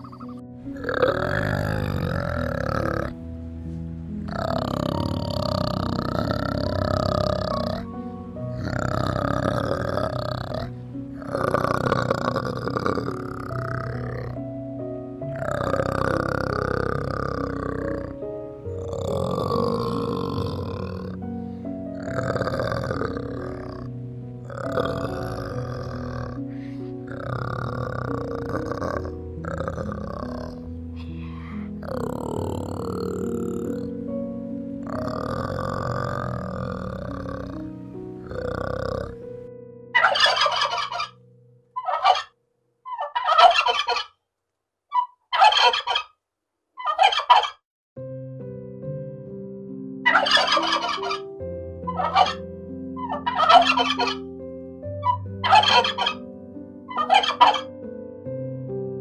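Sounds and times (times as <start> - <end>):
background music: 0.0 - 44.0, 48.0 - 59.0
turkey gobbling: 40.0 - 41.2, 41.8 - 42.3, 42.9 - 44.1, 45.0 - 46.1, 46.8 - 47.6, 50.1 - 51.3, 51.9 - 52.4, 53.0 - 54.2, 55.0 - 56.2, 56.9 - 57.7.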